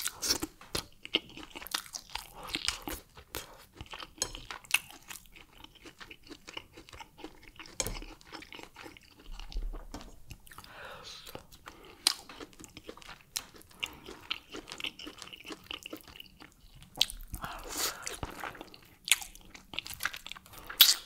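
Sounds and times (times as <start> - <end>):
chewing with crunches: 0.0 - 21.0.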